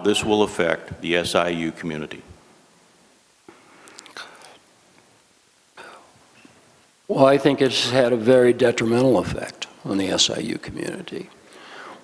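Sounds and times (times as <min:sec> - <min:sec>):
faint whispering: 0:05.8 - 0:06.2.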